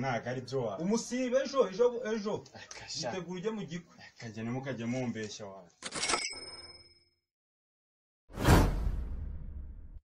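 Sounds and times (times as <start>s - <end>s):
whoosh sound effect: 8.3s - 9.7s.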